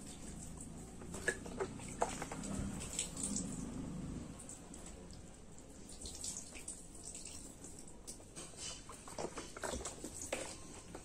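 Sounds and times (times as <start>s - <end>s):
water splashes: 0.0s - 8.4s.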